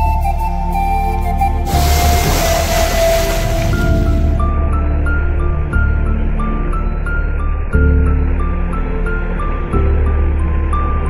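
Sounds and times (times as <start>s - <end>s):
tyres splashing through water: 1.6s - 4.6s.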